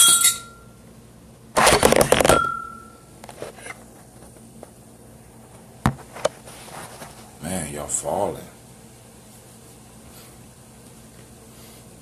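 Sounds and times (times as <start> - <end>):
bottle clinking against glass: 0.0 - 0.6, 2.3 - 2.9.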